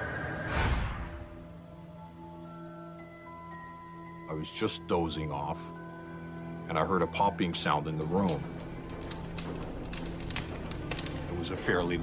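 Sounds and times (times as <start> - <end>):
air conditioner popping and crackling: 7.8 - 12.0.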